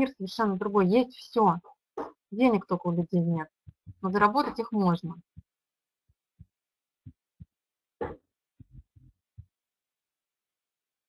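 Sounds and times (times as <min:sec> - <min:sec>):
woman speaking: 0:00.0 - 0:01.6, 0:02.4 - 0:05.2.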